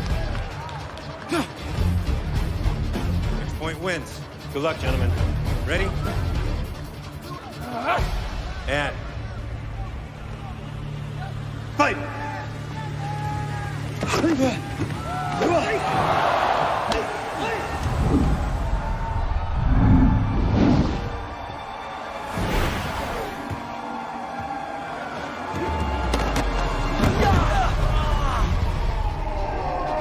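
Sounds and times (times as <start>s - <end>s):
dramatic score music: 0.0s - 15.9s
people shouting: 0.5s - 1.8s, 7.2s - 8.6s, 9.2s - 20.5s, 21.1s - 30.0s.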